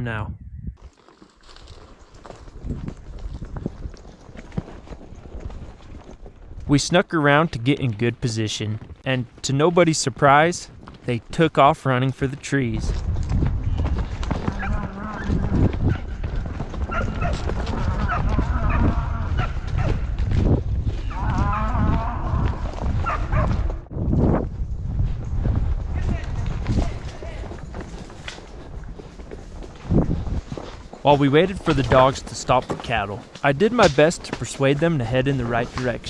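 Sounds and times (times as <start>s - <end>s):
wind rumble on microphone: 0.0s - 0.9s, 2.2s - 6.7s, 12.7s - 31.0s.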